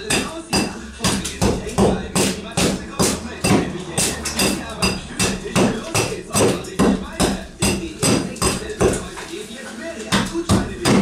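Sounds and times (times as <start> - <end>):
hand tool striking wood: 0.0 - 9.1, 10.1 - 11.0.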